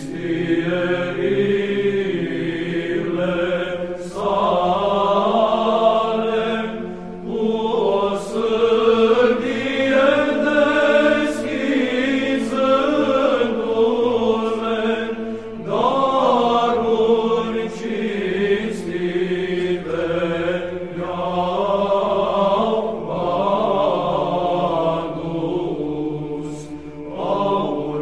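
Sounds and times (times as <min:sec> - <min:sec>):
held vocal drone: 0:00.0 - 0:28.0
voices chanting melismatic line: 0:00.0 - 0:28.0.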